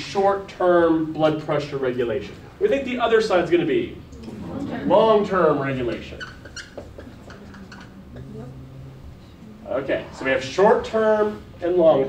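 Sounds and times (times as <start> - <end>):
faint room hum: 0.0 - 12.0
marker squeaking on whiteboard: 5.9 - 8.3.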